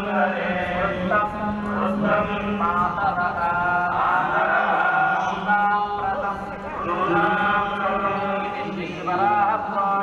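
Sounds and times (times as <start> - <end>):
devotional chanting in long notes: 0.0 - 10.0.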